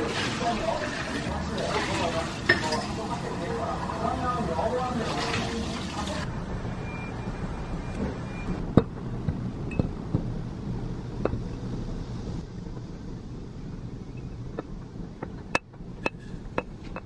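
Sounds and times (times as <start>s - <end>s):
low steady hum: 6.2s - 17.0s.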